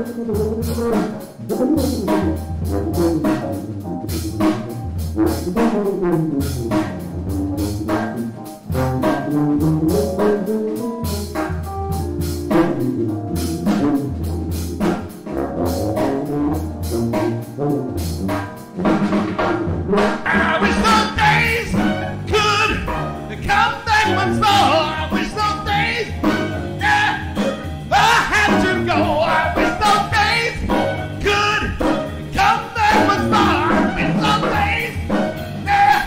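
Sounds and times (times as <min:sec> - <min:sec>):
drum kit and cymbals: 0:00.0 - 0:36.0
electric keyboard: 0:00.0 - 0:36.0.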